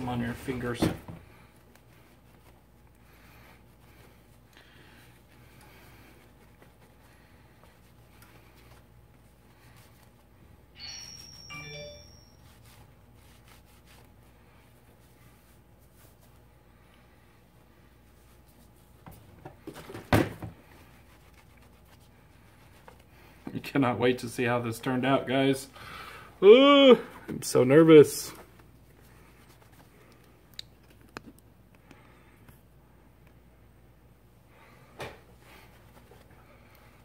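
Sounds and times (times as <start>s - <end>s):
cloth wiping a surface: 1.5s - 16.8s, 17.6s - 19.0s, 20.6s - 23.4s.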